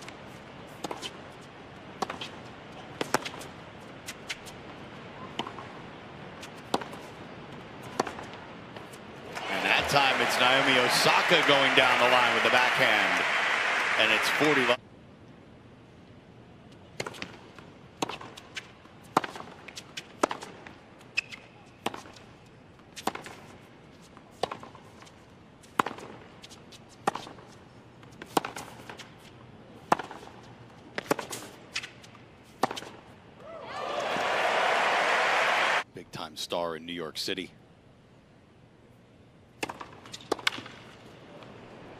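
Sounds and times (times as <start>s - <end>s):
crowd applause: 9.3s - 14.8s, 33.8s - 35.8s.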